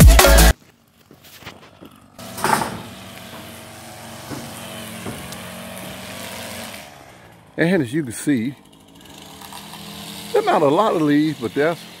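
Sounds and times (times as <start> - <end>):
engine running steadily: 0.0 - 12.0.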